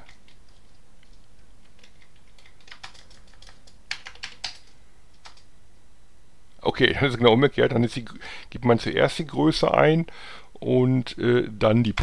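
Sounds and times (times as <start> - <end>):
keyboard key presses: 0.0 - 5.5.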